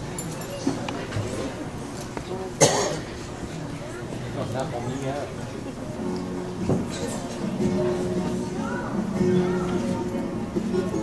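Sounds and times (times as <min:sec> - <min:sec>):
murmur of voices: 0:00.0 - 0:11.0
person coughing: 0:02.6 - 0:03.0.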